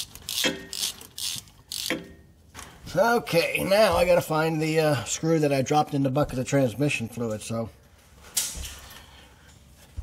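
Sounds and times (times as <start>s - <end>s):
ratchet wrench clicking: 0.0s - 2.0s.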